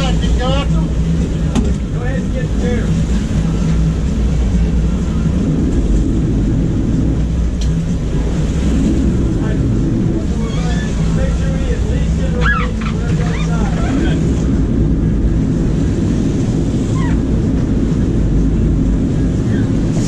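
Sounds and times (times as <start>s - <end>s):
boat engines droning: 0.0s - 20.0s
water churning: 0.0s - 20.0s
wind on microphone: 0.0s - 20.0s.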